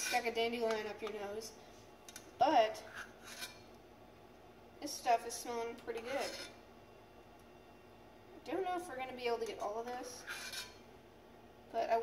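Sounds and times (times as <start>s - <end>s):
metal spoon scraping saucepan: 0.0s - 0.3s, 2.8s - 3.7s, 6.0s - 6.6s, 10.2s - 10.8s.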